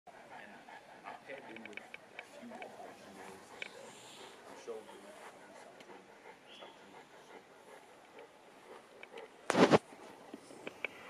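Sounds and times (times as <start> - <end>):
dog panting: 0.1 - 11.0
faint voices: 0.2 - 8.9.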